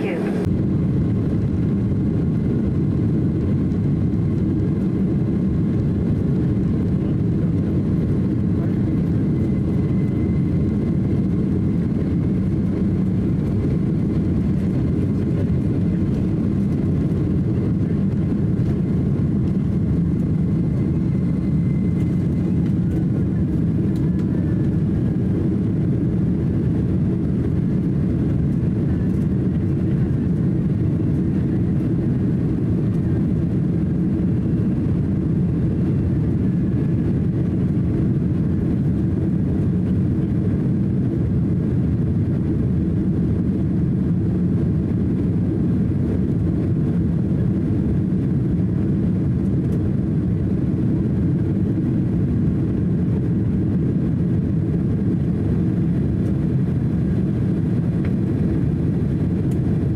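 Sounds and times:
faint high engine whine: 0:00.0 - 0:59.9
jet engines roaring at takeoff: 0:00.0 - 0:59.9.

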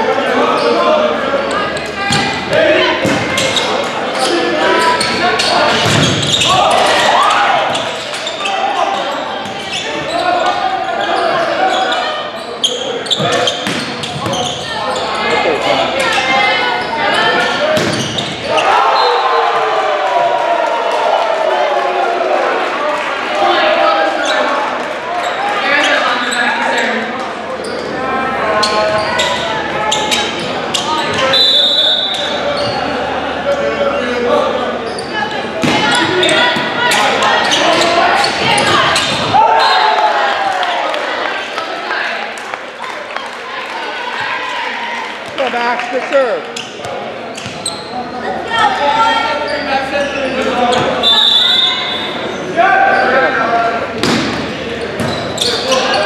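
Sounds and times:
volleyball bounced and struck: 0:35.6 - 0:36.0, 0:54.0 - 0:55.2.

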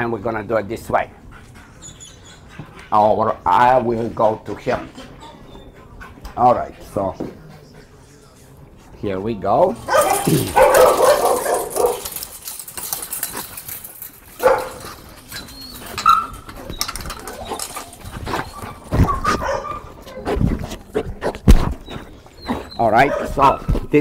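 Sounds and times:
chain-link gate clanking: 0:09.6 - 0:20.2
dog whining and barking: 0:09.9 - 0:20.8, 0:21.5 - 0:23.8.

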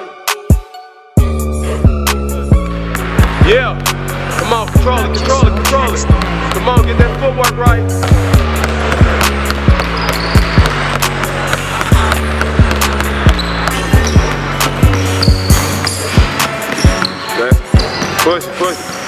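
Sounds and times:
background music with bass line: 0:00.0 - 0:18.4
basketball bouncing on hardwood floor: 0:02.9 - 0:07.2, 0:07.9 - 0:18.1.

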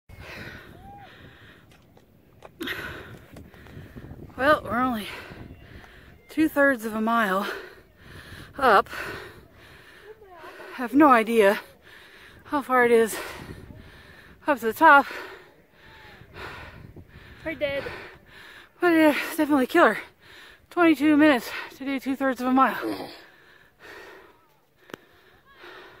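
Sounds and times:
person breathing hard: 0:00.1 - 0:01.8, 0:07.4 - 0:10.8, 0:11.6 - 0:12.5, 0:13.1 - 0:14.4, 0:15.1 - 0:19.2, 0:22.8 - 0:26.0.

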